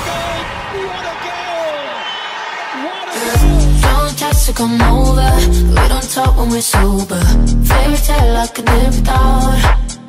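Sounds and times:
stadium crowd noise: 0.0s - 3.7s
excited sports commentator: 0.0s - 3.8s.

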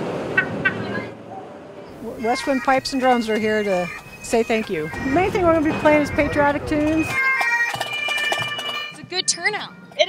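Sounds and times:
bagpipe band playing: 2.2s - 10.0s.

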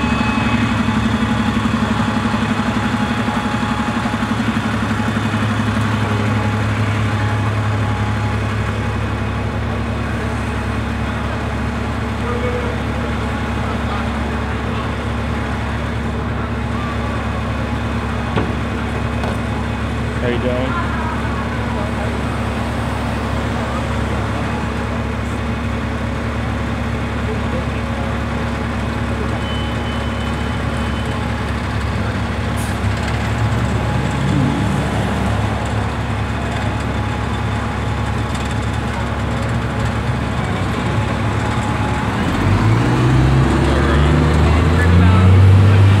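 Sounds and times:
low engine hum: 0.0s - 46.0s
cars driving past: 32.4s - 37.0s
vehicle engine revving away: 32.6s - 36.4s, 41.7s - 46.0s.

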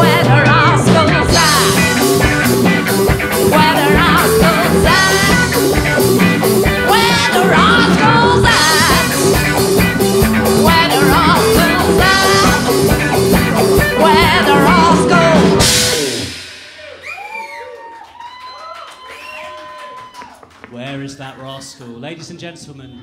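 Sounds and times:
woman singing: 0.0s - 2.2s, 3.4s - 5.7s, 6.7s - 9.5s, 10.4s - 13.1s, 13.8s - 15.6s
electric guitar picking quietly: 0.0s - 16.5s
live rock band playing: 0.0s - 17.8s
cymbal crash: 15.6s - 17.8s
audience clapping and cheering: 16.8s - 22.1s.

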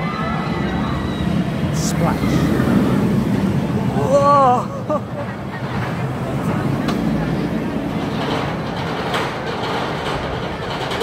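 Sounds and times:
murmur of crowd: 0.0s - 11.0s
roller coaster train on track: 0.0s - 11.0s.

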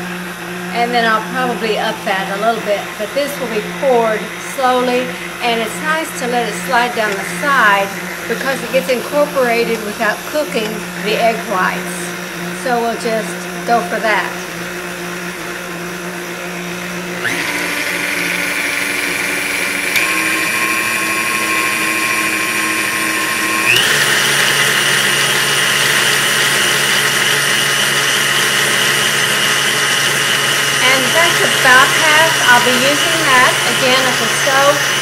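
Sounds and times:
mixer motor rising whine: 0.0s - 35.0s
stand mixer motor running: 0.0s - 35.0s.

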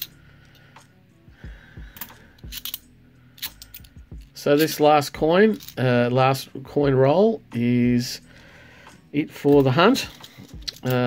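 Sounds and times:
coins clicking together: 2.0s - 4.8s, 9.5s - 11.0s.

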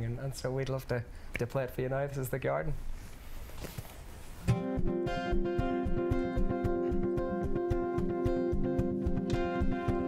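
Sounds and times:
acoustic guitar strumming: 4.5s - 10.0s.

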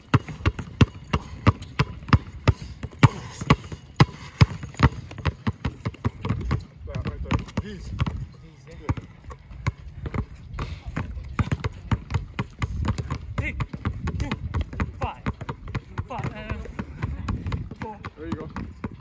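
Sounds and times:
basketballs bouncing on brick: 0.0s - 19.0s.

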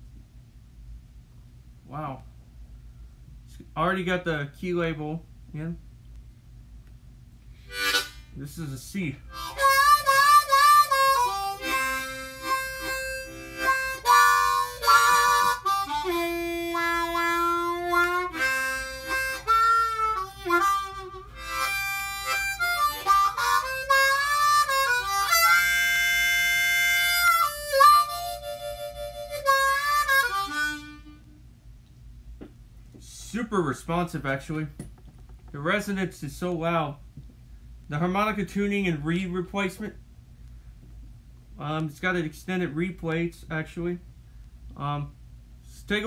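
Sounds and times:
harmonica playing: 7.7s - 8.6s, 9.3s - 31.4s.

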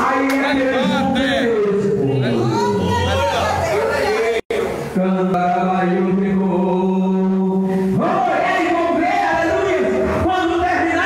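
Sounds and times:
man singing a long note: 5.0s - 8.0s.

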